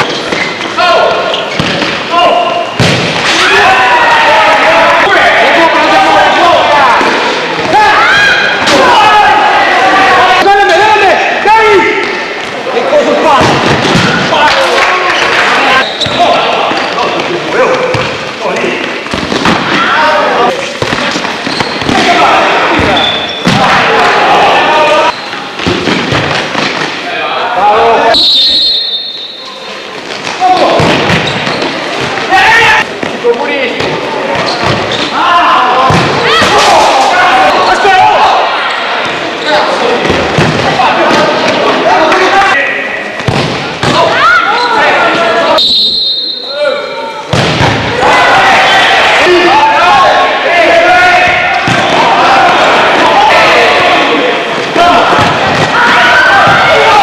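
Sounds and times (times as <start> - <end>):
people shouting: 2.1 - 18.8, 19.4 - 20.7, 21.7 - 25.1, 32.0 - 32.9, 34.1 - 42.8, 43.7 - 45.6, 46.6 - 57.0.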